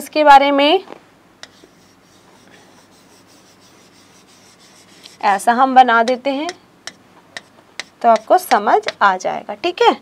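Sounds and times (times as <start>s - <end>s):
stylus scratching on touchscreen: 1.4s - 5.5s.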